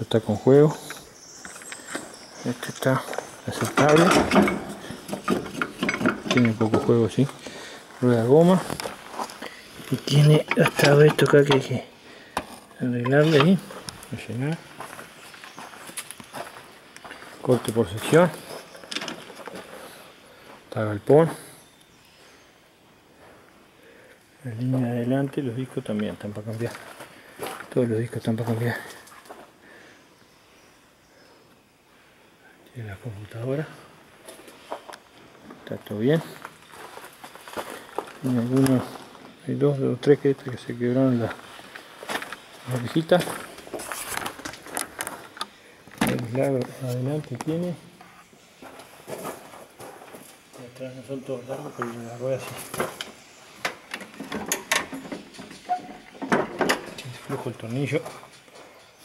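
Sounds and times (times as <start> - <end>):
faint background noise: 0.0 - 59.0
metal parts clicking and knocking: 3.6 - 6.9, 10.0 - 11.7.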